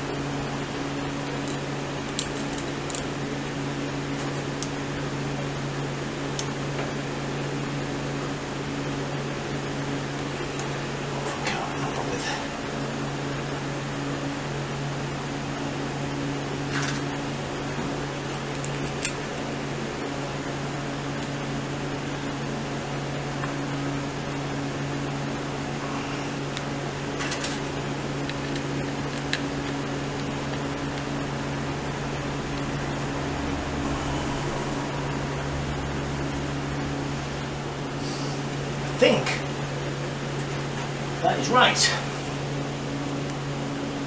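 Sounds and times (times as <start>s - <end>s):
low machine hum: 0.0s - 44.0s.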